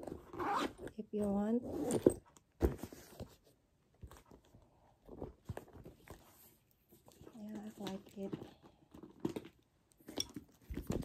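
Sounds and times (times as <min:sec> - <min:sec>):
handbag being handled: 0:00.0 - 0:03.4.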